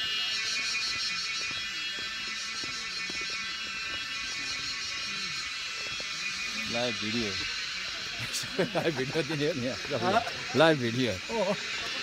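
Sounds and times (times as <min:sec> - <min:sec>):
faint voices: 0:00.0 - 0:12.0
insect chorus buzzing: 0:00.0 - 0:12.0.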